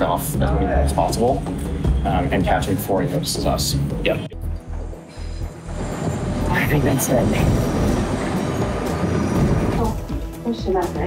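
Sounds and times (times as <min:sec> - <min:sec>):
background music: 0:00.0 - 0:11.0
train rushing: 0:04.9 - 0:11.0.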